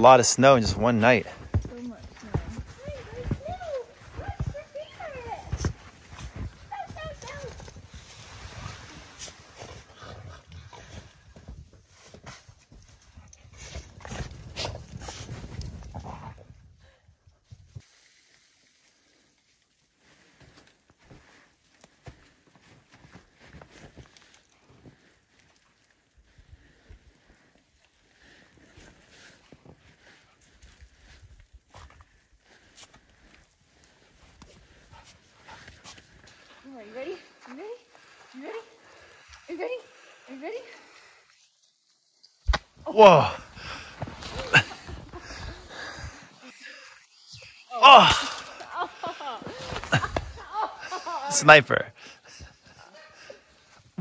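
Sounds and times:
footsteps crunching in snow: 0.4s - 12.8s, 43.3s - 47.6s.

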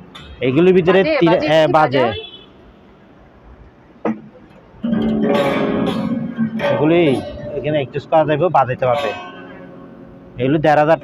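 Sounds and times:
acoustic guitar plucked and strummed: 4.0s - 11.0s.

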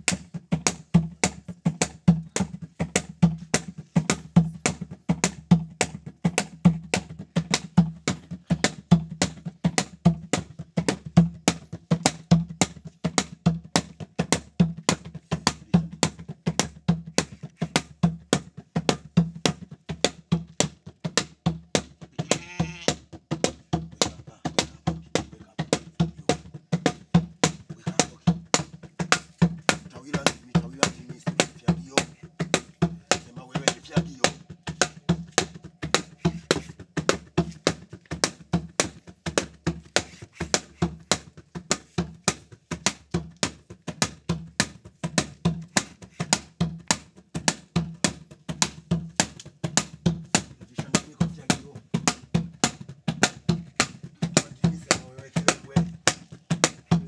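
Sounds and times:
hand drumming: 0.0s - 57.0s
wavering high cry: 22.2s - 22.9s
voices calling: 29.9s - 34.6s.

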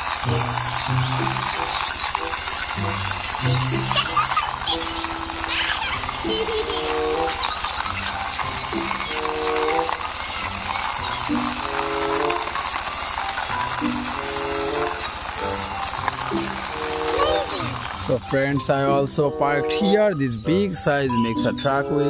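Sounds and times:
background music of stepped notes: 0.0s - 22.0s.

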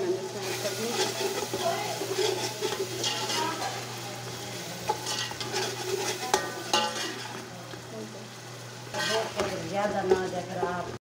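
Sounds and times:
masala sizzling in oil: 0.0s - 11.0s.

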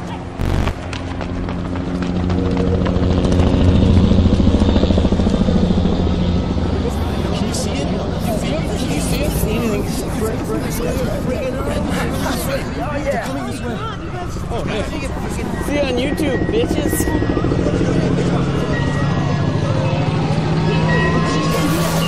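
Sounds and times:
vehicle engine droning: 0.4s - 8.6s.

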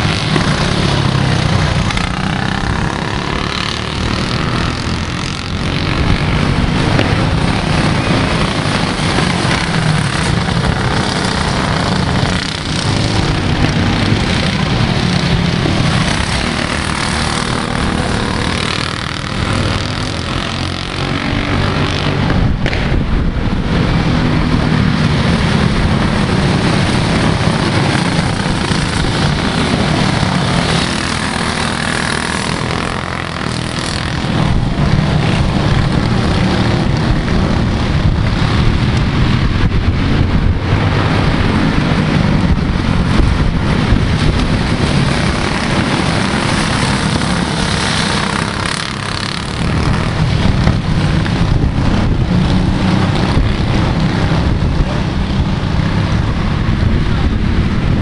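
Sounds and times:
kart engines buzzing: 0.0s - 58.0s.

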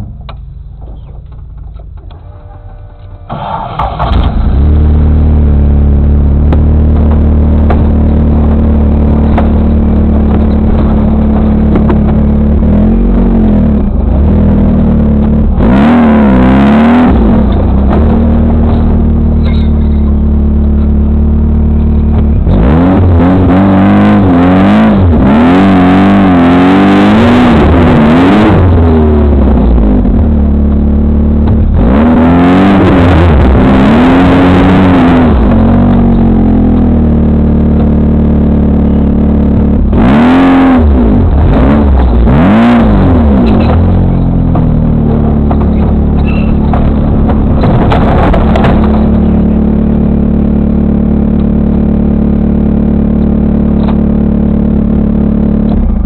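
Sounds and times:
buggy engine idling and revving: 0.0s - 56.0s.

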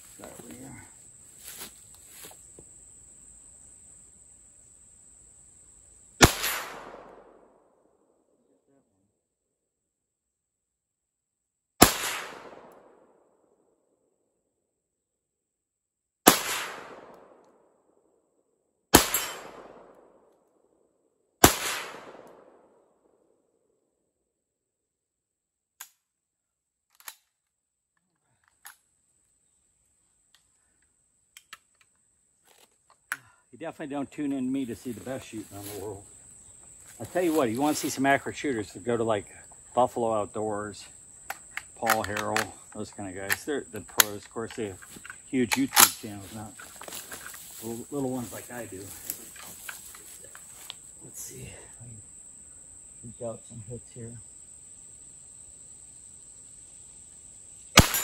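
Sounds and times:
rifle shots: 6.2s - 7.5s, 11.8s - 13.0s, 16.2s - 17.4s, 18.9s - 20.1s, 21.4s - 22.7s, 57.8s - 58.0s.

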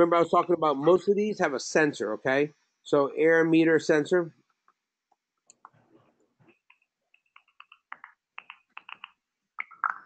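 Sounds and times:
computer keys clicking: 6.6s - 10.0s.

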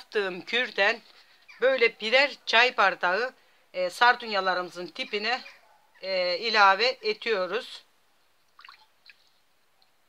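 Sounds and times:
cup dipped into liquid dripping: 8.5s - 9.3s.

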